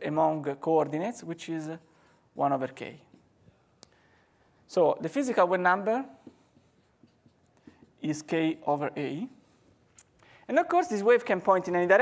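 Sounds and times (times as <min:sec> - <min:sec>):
marker writing on whiteboard: 0:01.7 - 0:03.6, 0:05.0 - 0:09.9.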